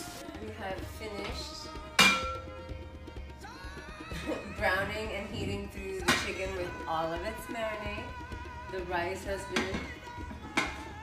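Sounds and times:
metal pan lid clanging: 2.0 - 2.4, 4.7 - 6.5, 9.6 - 9.9.

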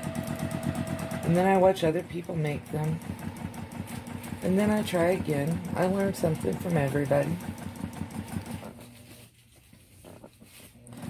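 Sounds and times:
sewing machine stitching: 0.0 - 9.1.

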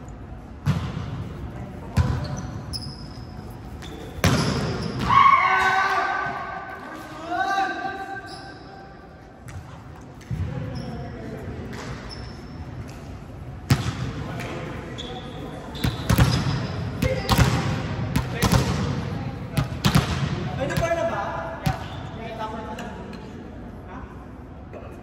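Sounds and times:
volleyballs smacking in gym hall: 0.5 - 2.4, 3.8 - 7.2, 9.3 - 10.8, 12.7 - 14.8, 15.6 - 22.0.

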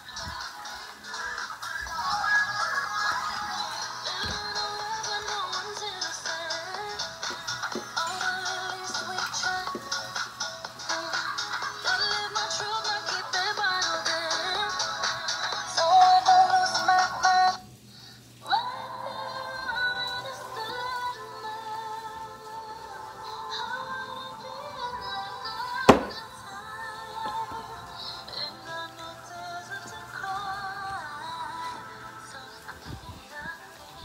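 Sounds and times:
pop song from tablet speaker: 0.0 - 34.0.

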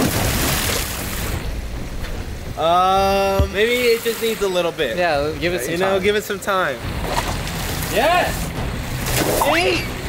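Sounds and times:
rushing water in a pool: 0.0 - 2.0, 3.2 - 5.0.

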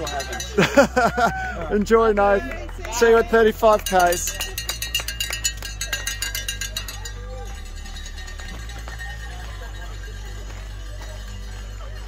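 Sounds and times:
bell shaken rapidly: 0.0 - 1.0, 3.2 - 12.0
faint voices: 2.3 - 12.0.

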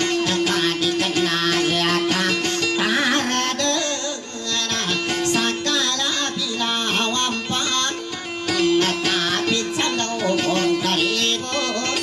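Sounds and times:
person singing: 0.0 - 12.0
plucked boat lute melody: 0.0 - 12.0.

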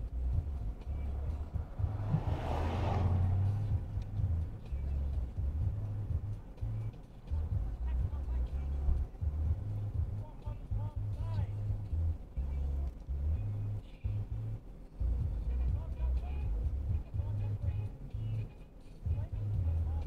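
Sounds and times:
vehicle passing: 0.0 - 13.6
low uneven rumble: 0.0 - 20.0.

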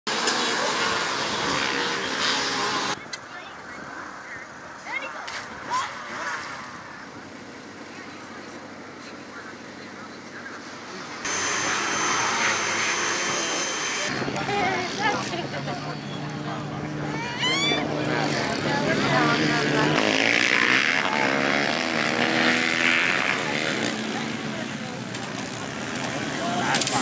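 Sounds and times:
pressure washer spraying: 11.3 - 14.1
high pump whine: 11.3 - 14.2
loud rushing noise: 11.3 - 14.2.

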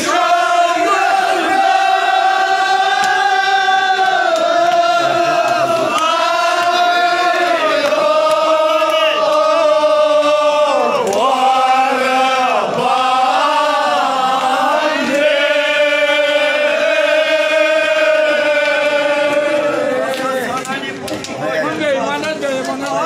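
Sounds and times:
crowd chanting in unison: 0.0 - 20.7.

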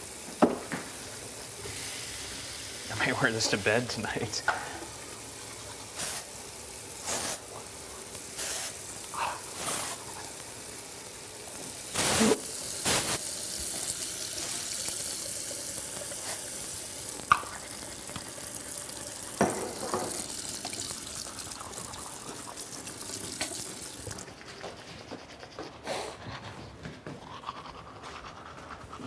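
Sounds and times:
tap water running into sink: 0.0 - 7.0, 10.3 - 24.4.

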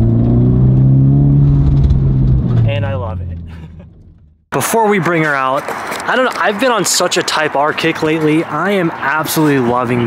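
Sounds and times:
car engine pulling under load: 0.0 - 4.4.

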